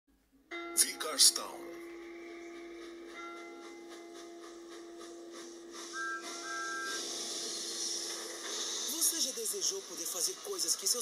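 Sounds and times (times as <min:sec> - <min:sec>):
soft background music: 0:00.1 - 0:11.0
steam locomotive hiss: 0:03.7 - 0:10.8.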